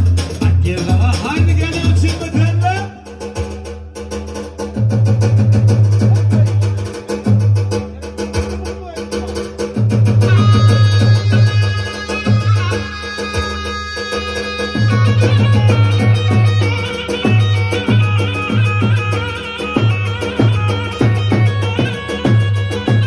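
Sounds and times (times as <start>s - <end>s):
heavy bass drum beats: 0.0s - 23.0s
held keyboard melody: 10.2s - 23.0s.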